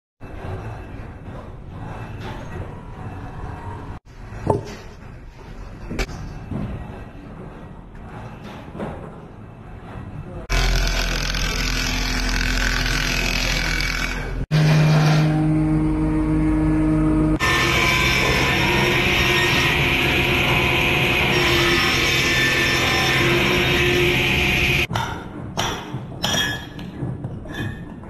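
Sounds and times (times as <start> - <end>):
machine cutting wood: 10.5 - 24.9.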